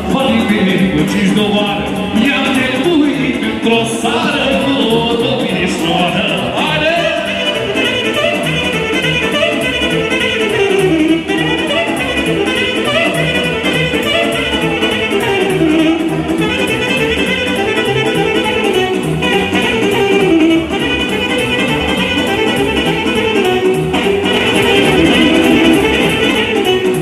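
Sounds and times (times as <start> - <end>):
electronic keyboard beat: 0.0 - 27.0
saxophone melody: 0.0 - 27.0.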